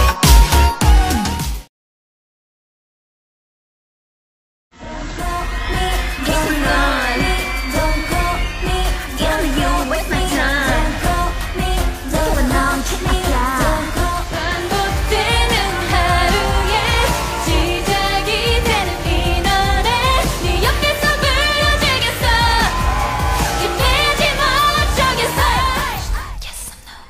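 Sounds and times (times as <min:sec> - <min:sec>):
female voices singing pop: 0:04.8 - 0:27.0.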